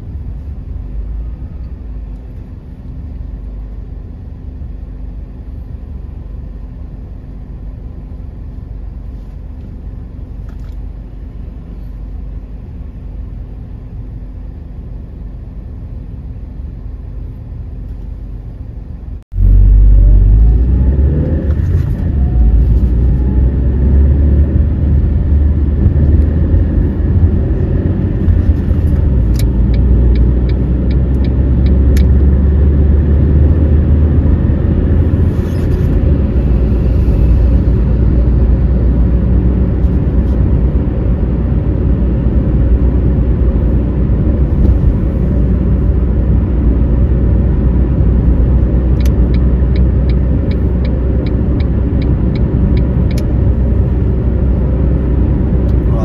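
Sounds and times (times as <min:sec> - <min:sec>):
engine and tyres rumbling: 0:00.0 - 0:56.0
turn signal clicking: 0:28.9 - 0:32.2, 0:48.9 - 0:53.4.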